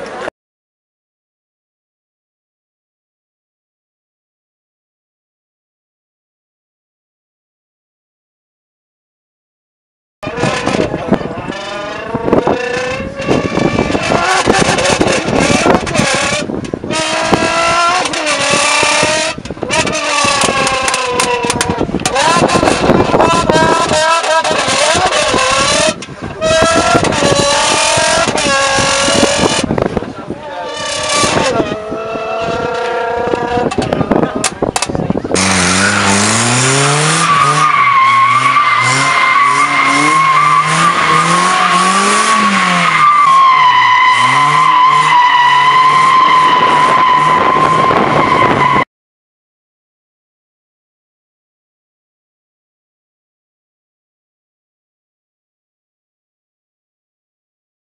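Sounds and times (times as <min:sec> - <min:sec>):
car engine revving: 0:10.2 - 0:48.8
tyre squeal: 0:11.5 - 0:29.7, 0:30.4 - 0:34.2, 0:35.3 - 0:48.9.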